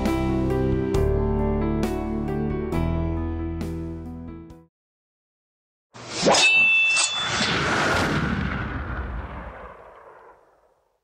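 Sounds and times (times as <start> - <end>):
deep boom with rumbling decay: 7.6 - 10.8.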